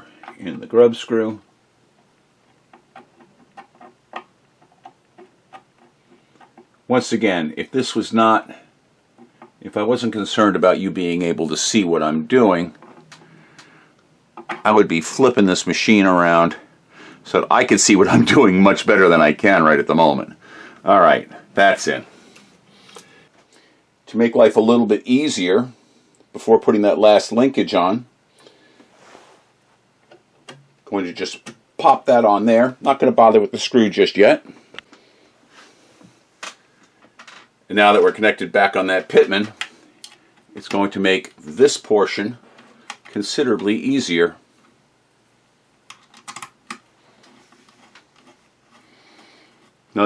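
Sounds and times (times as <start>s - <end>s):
person speaking: 14.5s - 23.2s, 30.9s - 34.6s, 37.7s - 44.4s.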